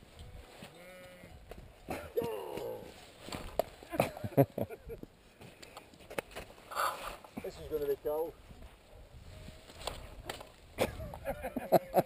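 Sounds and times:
man laughing: 1.9s - 2.8s, 3.8s - 5.1s, 10.8s - 12.0s.

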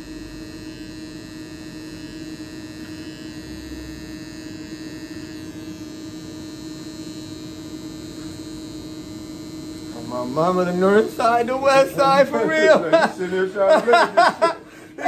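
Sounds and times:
electric hair clippers buzzing: 0.0s - 15.0s.

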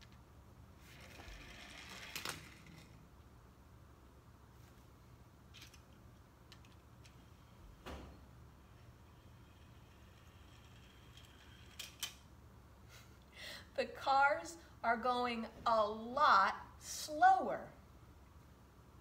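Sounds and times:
toy cars clattering on wood: 0.9s - 3.0s.

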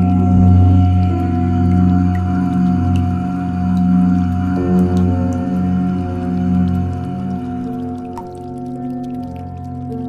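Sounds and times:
deep chanting drone: 0.0s - 10.0s.

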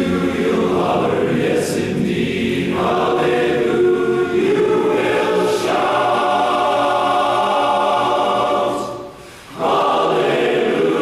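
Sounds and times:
chorus singing a cappella: 0.0s - 11.0s.

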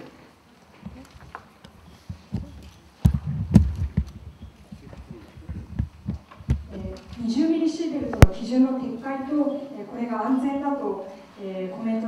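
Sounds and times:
low thumps and knocks: 2.1s - 7.2s.

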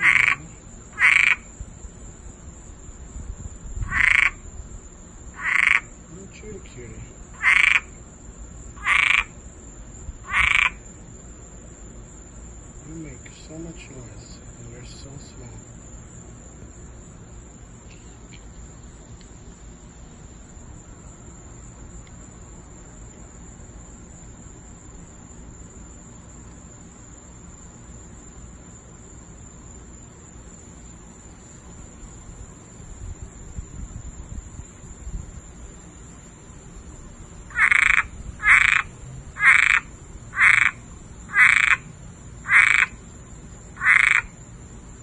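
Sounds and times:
frog croaking: 0.0s - 1.6s, 3.8s - 4.5s, 5.3s - 8.0s, 8.7s - 9.4s, 10.2s - 10.9s, 37.5s - 43.0s, 43.7s - 44.4s.

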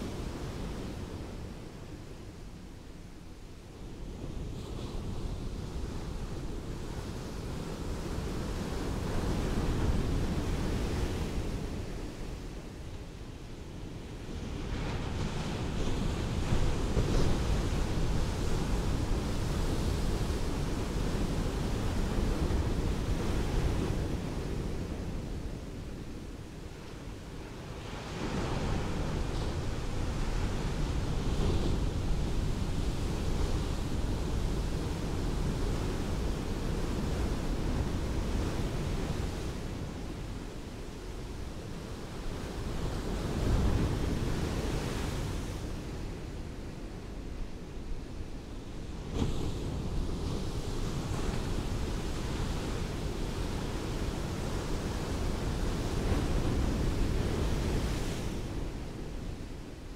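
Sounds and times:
ocean surf washing up a beach: 0.0s - 59.9s.

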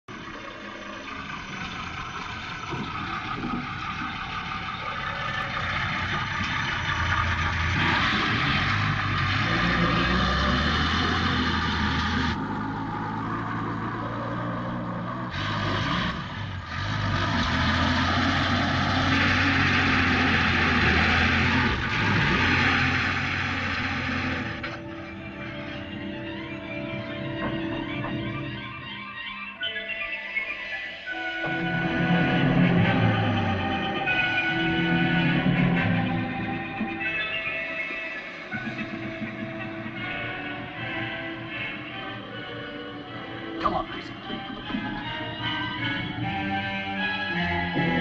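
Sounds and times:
heavy truck engine running: 0.0s - 48.0s.

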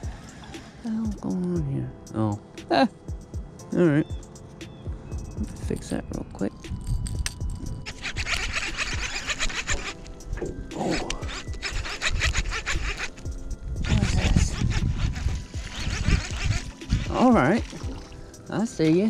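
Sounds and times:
background music: 0.0s - 19.0s
gusty wind buffeting microphone: 4.9s - 18.4s.

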